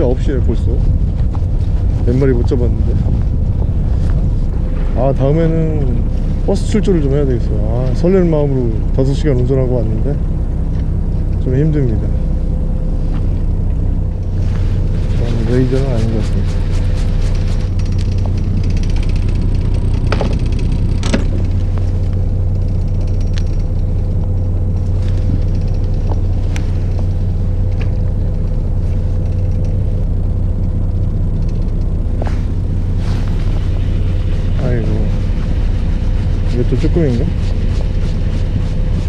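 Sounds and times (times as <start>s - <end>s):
boat engine droning: 0.0s - 39.0s.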